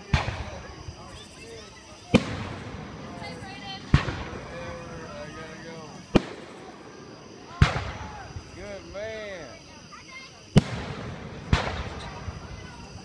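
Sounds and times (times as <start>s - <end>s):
firework shells bursting with echo: 0.0s - 13.0s.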